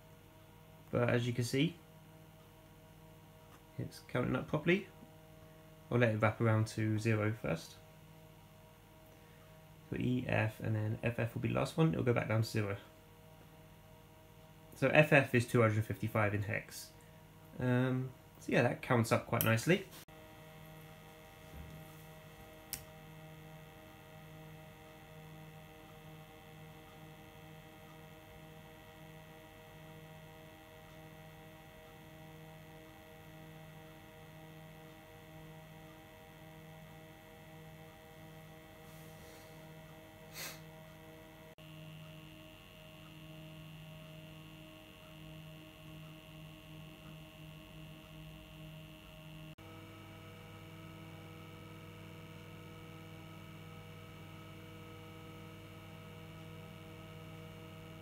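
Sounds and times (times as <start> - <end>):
low electrical hum: 0.0 - 58.0.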